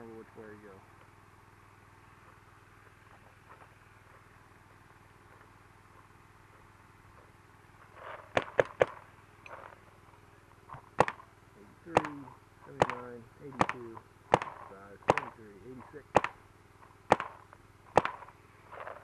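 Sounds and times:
paintball marker shots: 8.3 - 9.0, 10.9 - 11.3, 11.9 - 16.4, 17.1 - 19.0
faint pops: 11.9 - 18.3.

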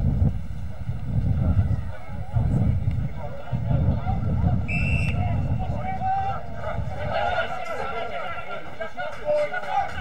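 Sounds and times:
voices shouting and calling out: 0.7 - 10.0.

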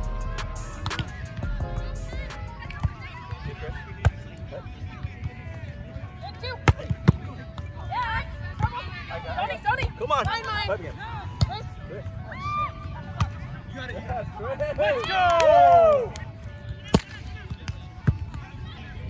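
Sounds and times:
players calling out: 0.0 - 3.0
music: 0.0 - 19.0.

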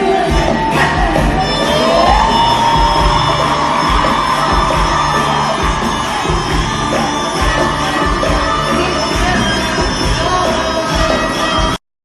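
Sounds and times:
orchestra playing live: 0.0 - 11.8
audience cheering: 0.3 - 9.4.

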